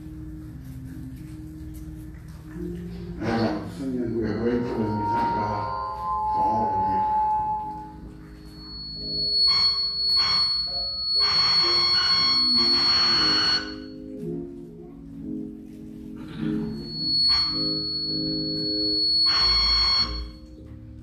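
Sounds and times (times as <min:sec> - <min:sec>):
church keyboard chords: 0:00.0 - 0:21.0.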